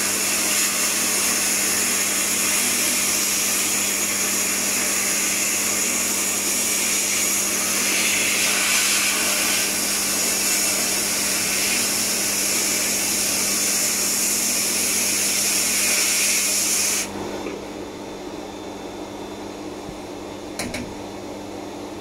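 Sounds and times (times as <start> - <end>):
sandblast gun hissing: 6.6 - 17.1
steady low hum: 17.1 - 22.0.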